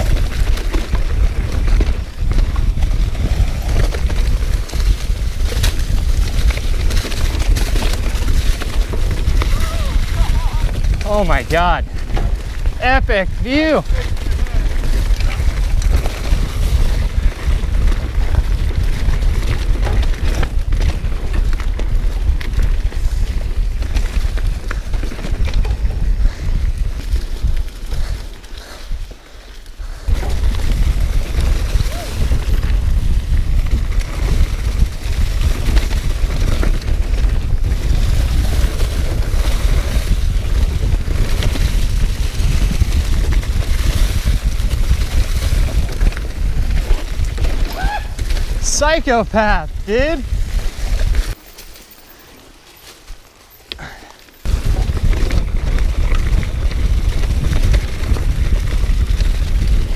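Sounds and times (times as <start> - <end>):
wind on microphone: 0.0 - 29.1, 29.8 - 51.4, 53.8 - 59.9
bike tyres rolling on dirt: 0.0 - 59.9.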